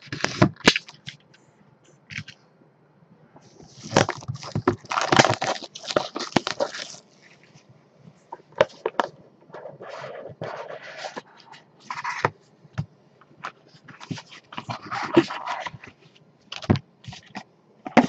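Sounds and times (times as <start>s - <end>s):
plastic shrink wrap crinkling: 3.6s - 7.6s.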